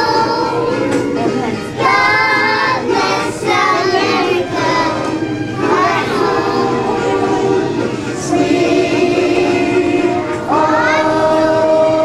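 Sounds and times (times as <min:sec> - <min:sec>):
children singing: 0:00.0 - 0:12.0.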